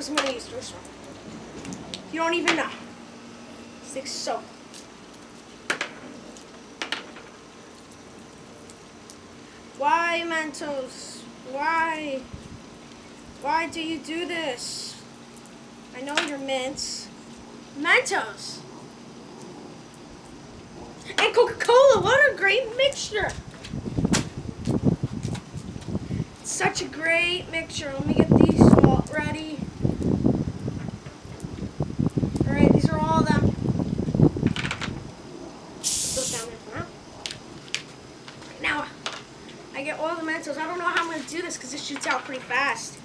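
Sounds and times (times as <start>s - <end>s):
outdoor background noise: 0.0s - 43.0s
carbonation hissing from bottle: 35.8s - 36.6s.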